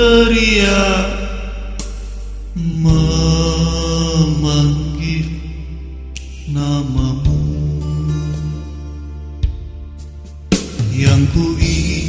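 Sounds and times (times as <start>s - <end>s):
man singing ballad: 0.0s - 9.3s, 10.6s - 12.0s
instrumental backing with bass: 0.0s - 12.0s.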